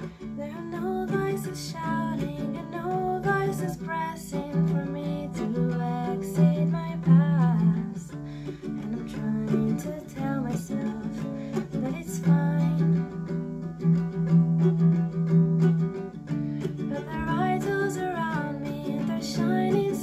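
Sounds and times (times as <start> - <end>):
woman singing: 0.0 - 13.5, 16.6 - 20.0
ukulele chords: 0.0 - 20.0.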